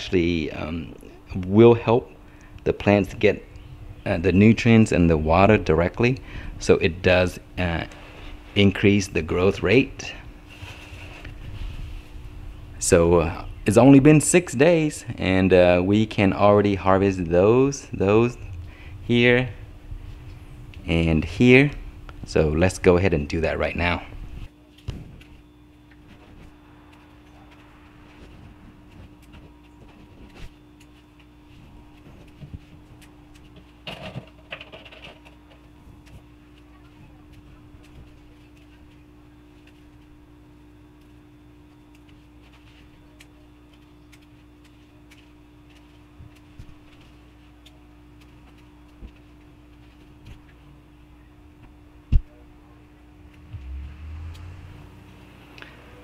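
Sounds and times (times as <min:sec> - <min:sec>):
low hum: 0:00.0 - 0:56.0.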